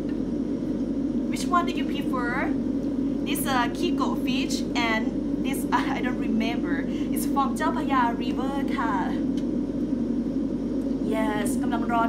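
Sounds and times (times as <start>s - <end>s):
low humming drone with hiss: 0.0s - 12.0s.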